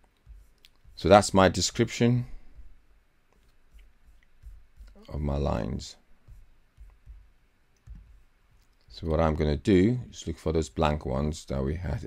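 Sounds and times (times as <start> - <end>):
soft low bumps: 0.0 - 9.4.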